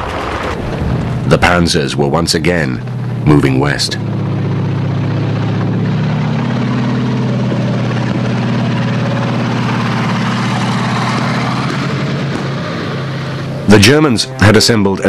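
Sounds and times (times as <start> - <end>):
tank engines droning: 0.0 - 15.0.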